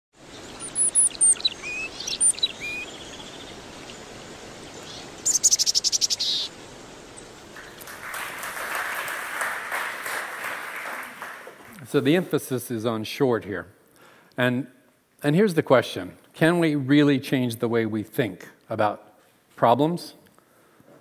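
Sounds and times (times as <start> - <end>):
bird chirping: 0.2 - 7.9
audience applause: 7.5 - 11.8.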